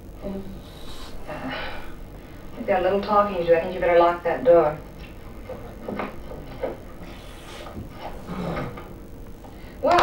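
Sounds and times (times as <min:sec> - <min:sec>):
steady hiss: 0:00.0 - 0:04.9, 0:06.9 - 0:09.8.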